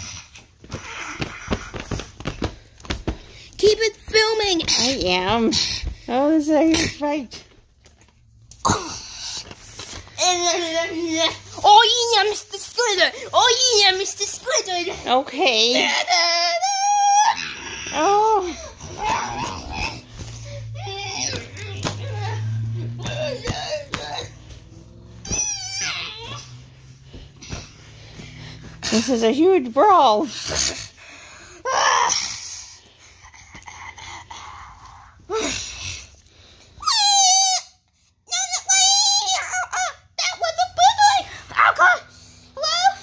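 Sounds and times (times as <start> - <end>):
child making fight noises: 0.0 - 2.1, 3.6 - 5.6, 8.6 - 9.4, 10.1 - 28.2, 31.6 - 32.5, 34.8 - 36.0, 36.8 - 37.7, 38.3 - 43.0
child squealing and shrieking: 15.8 - 24.3, 25.2 - 26.6, 31.6 - 32.4, 36.8 - 40.0.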